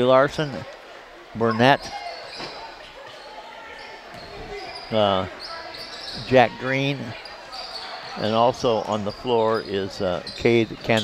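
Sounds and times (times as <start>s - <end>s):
faint background chatter: 0.0s - 11.0s.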